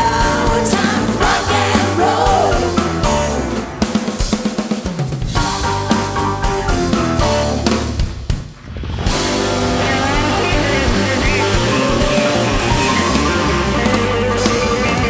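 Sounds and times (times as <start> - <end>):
drums: 0.0 - 15.0
rock and roll band playing: 0.0 - 15.0.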